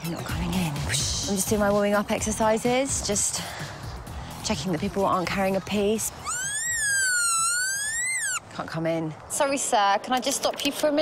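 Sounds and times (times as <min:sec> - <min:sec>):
high sliding whistle-like tone: 0:06.2 - 0:08.4.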